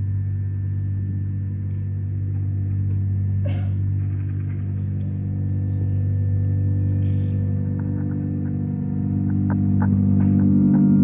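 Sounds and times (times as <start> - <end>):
low musical drone: 0.0 - 11.0.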